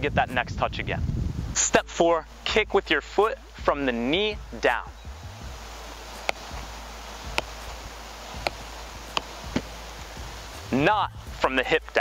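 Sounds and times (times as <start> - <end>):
background hiss: 0.3 - 12.0
soccer ball kicked on foot: 6.0 - 6.7, 7.3 - 9.8.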